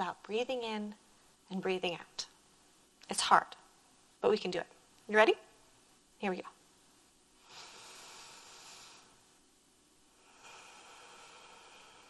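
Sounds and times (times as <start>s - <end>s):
woman breathing slowly: 7.4s - 9.4s, 10.0s - 12.0s.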